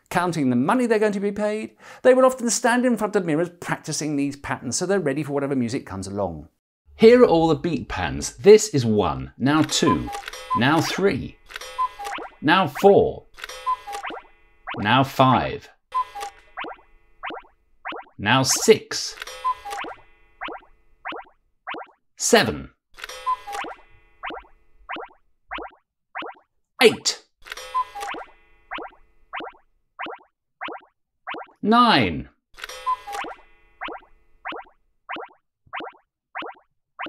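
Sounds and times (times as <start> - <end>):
cartoon pop sound effects: 16.6 - 18.2, 19.8 - 22.0, 24.3 - 26.5, 28.1 - 31.6, 33.2 - 36.7
cartoon boing sound effects: 28.7 - 31.6.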